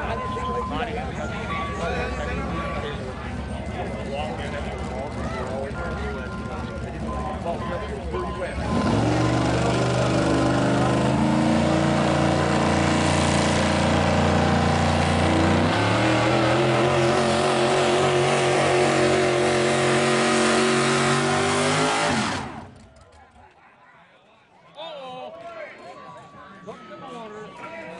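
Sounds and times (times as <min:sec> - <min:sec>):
engine at high revs: 0:02.1 - 0:22.9.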